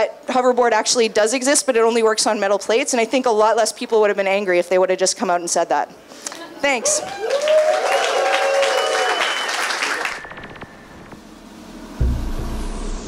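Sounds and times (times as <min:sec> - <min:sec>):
audience applauding and cheering: 0:06.8 - 0:11.1.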